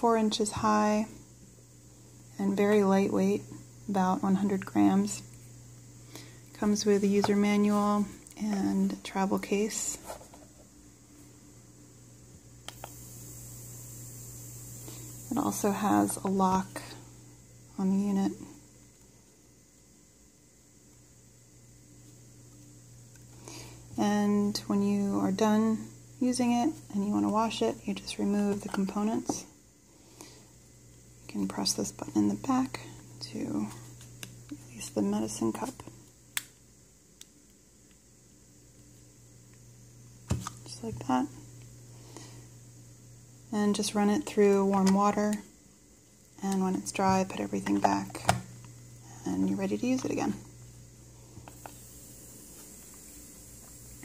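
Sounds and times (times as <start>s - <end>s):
nebulizer hissing and humming: 12.3s - 18.5s, 21.6s - 36.4s, 39.0s - 54.0s.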